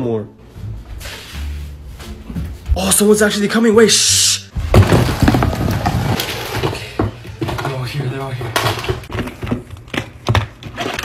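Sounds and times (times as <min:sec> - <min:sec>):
objects knocking and rattling in box: 0:04.6 - 0:11.0.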